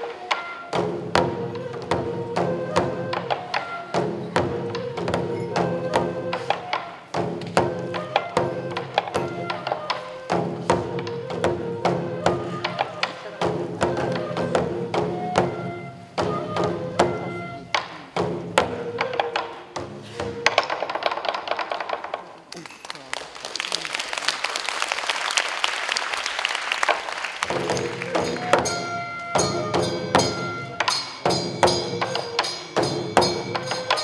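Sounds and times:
taiko drum beats: 0.0s - 22.3s, 26.9s - 34.0s.

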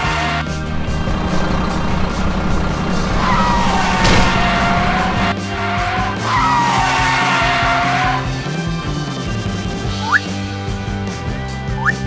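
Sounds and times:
car tyres screeching: 0.0s - 8.5s
background music: 0.0s - 12.0s.

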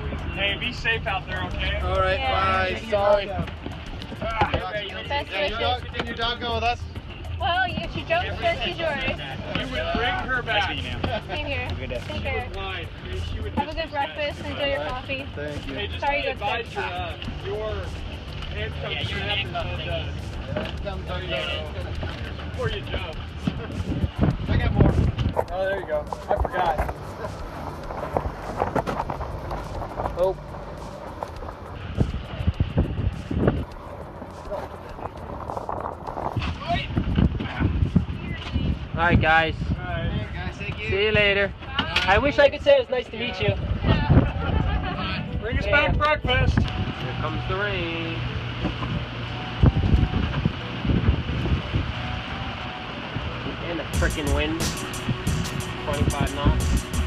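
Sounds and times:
wind and sea wash: 0.0s - 56.8s
knocks and clatter of people climbing: 3.1s - 5.0s, 5.8s - 8.2s.

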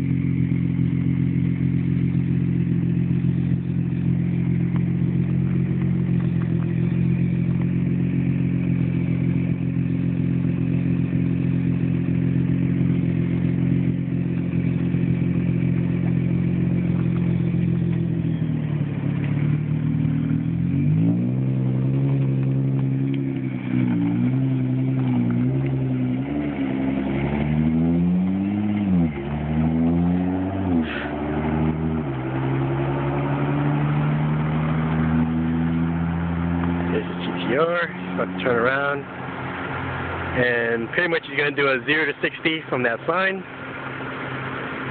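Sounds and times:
car engine idling and revving: 0.0s - 44.9s.

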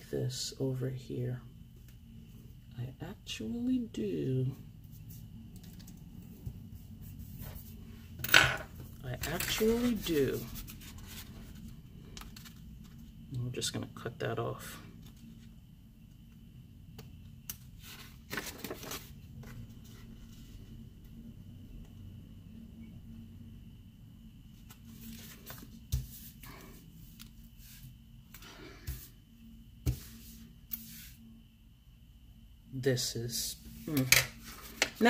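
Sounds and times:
paper rustling: 9.2s - 13.1s, 17.8s - 20.5s, 24.6s - 27.8s.

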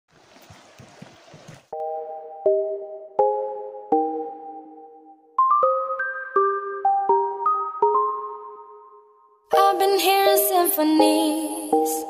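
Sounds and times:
creek water running: 0.1s - 1.7s
synthesizer chord: 1.8s - 12.0s.

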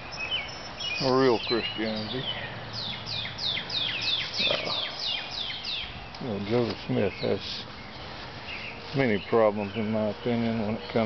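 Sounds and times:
songbird singing repeated notes: 0.0s - 11.0s.

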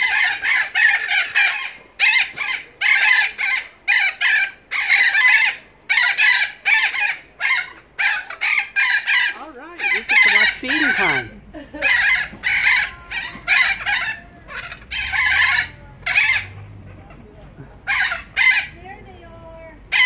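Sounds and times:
birds screaming: 0.0s - 20.0s.

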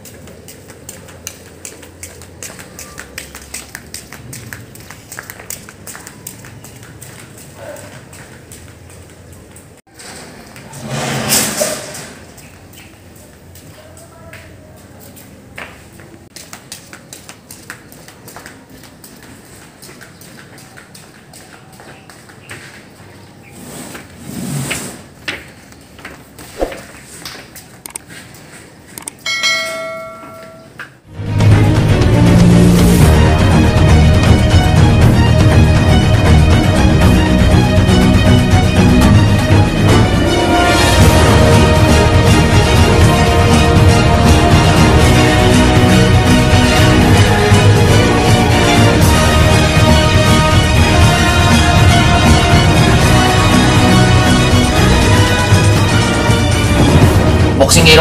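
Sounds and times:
flip-flops slapping on concrete: 0.0s - 9.8s, 12.4s - 28.8s
bright bell-like chime: 29.3s - 30.8s.

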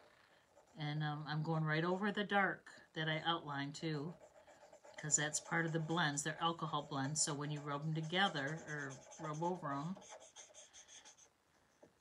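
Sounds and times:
marker scratching on paper: 3.9s - 11.8s.

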